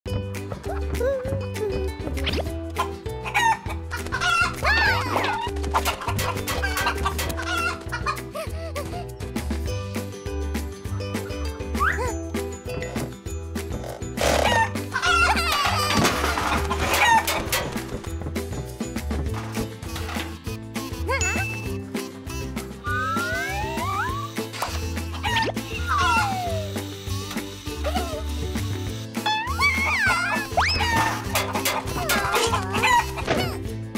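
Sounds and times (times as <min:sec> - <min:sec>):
background music with steady beat: 0:00.1 - 0:33.9
cartoon chicken squawking and clucking: 0:02.2 - 0:08.2, 0:14.3 - 0:17.6, 0:22.9 - 0:26.8, 0:29.3 - 0:33.6.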